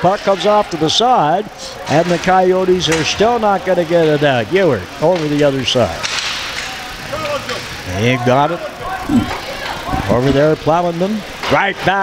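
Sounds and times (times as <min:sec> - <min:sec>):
murmur of distant voices: 0:00.0 - 0:12.0.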